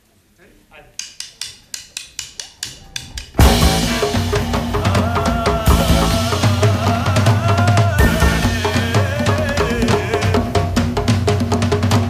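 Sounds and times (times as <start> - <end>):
sharp percussion clicks: 0.9 - 8.1.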